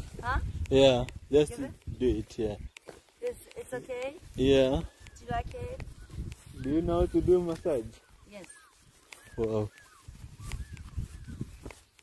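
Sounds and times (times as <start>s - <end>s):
horse hooves thudding on grass: 0.0s - 12.0s
chirping bird calls: 4.8s - 12.0s.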